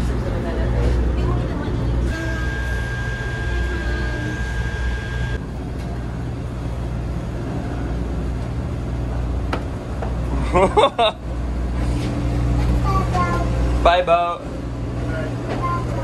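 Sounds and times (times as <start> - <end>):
ferry engines droning: 0.0 - 16.0
thin high whine: 2.0 - 5.5.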